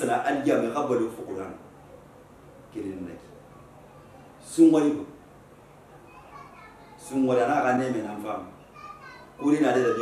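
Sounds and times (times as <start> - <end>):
faint distant voices: 0.0 - 10.0.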